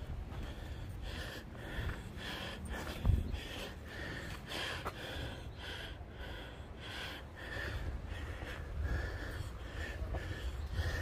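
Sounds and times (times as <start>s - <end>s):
person breathing hard and fast: 0.0s - 11.0s.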